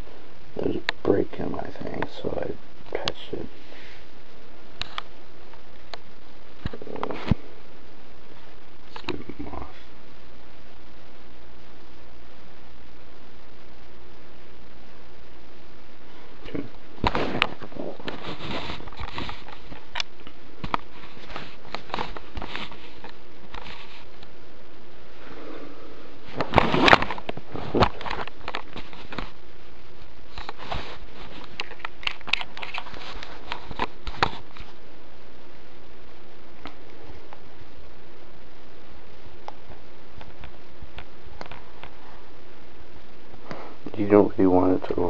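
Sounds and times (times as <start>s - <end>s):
steady hiss: 0.0s - 45.0s.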